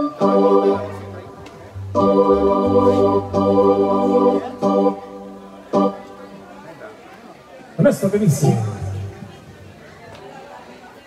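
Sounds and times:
keyboard chord: 0.0s - 6.9s
murmur of crowd chatter: 0.0s - 11.0s
man speaking over loudspeaker: 7.7s - 9.6s.

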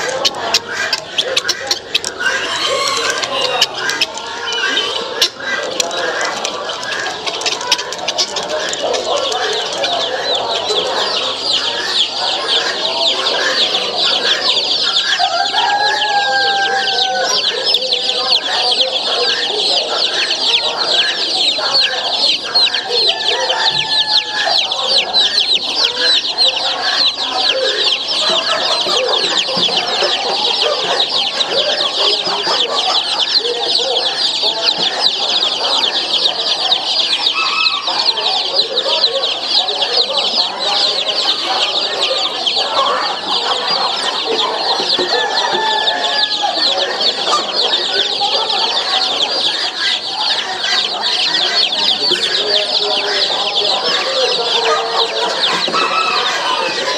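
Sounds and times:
baby chicks peeping: 0.0s - 56.9s.

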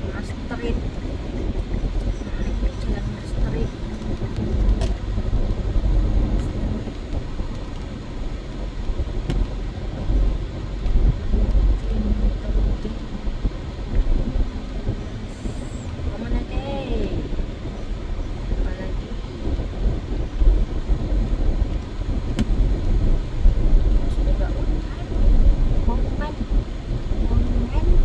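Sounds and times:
car driving on wet road: 0.0s - 28.0s.

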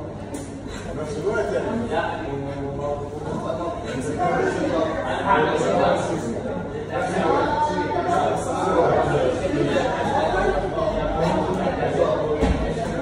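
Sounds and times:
murmur of overlapping voices: 0.0s - 13.0s.

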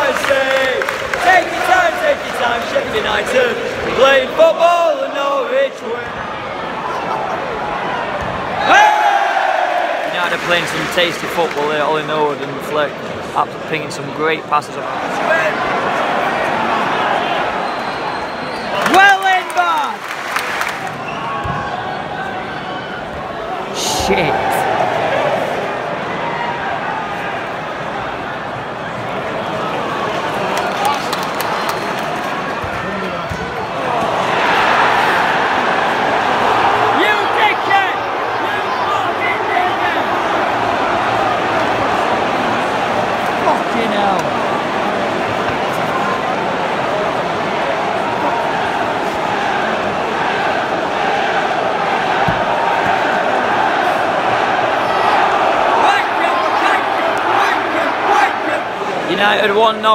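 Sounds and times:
stadium crowd roaring: 0.0s - 59.9s.

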